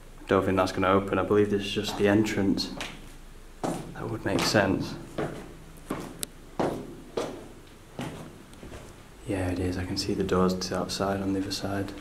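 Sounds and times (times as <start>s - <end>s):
footsteps down a staircase: 1.8s - 9.0s.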